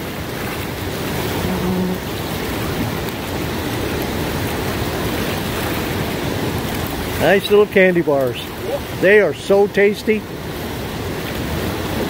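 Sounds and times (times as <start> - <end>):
river rapids rushing: 0.0 - 12.0.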